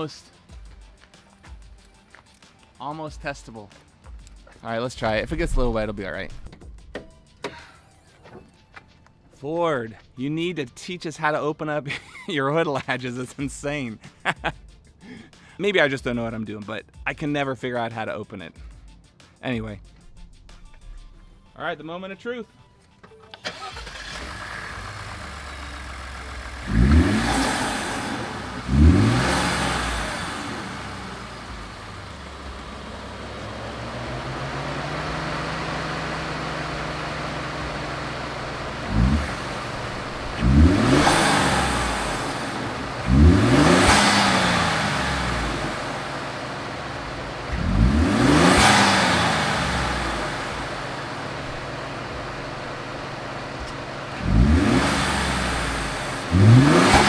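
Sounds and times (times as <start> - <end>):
truck engine starting and idling: 4.7 - 8.7, 23.0 - 57.0
engine revving: 5.0 - 6.5, 23.4 - 57.0.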